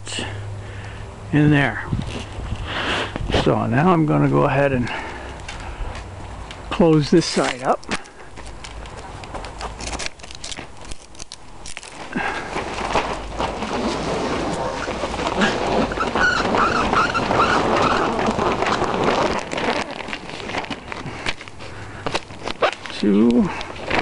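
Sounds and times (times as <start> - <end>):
plastic sheeting rustling: 7.2 - 24.0.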